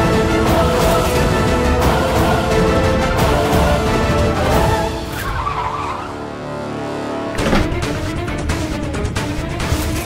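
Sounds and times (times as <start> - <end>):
car tyres squealing: 5.0 - 6.4.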